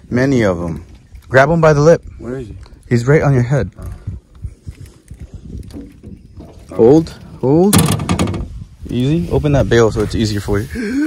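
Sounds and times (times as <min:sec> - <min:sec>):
faint low thumps and knocks: 0:03.7 - 0:09.0.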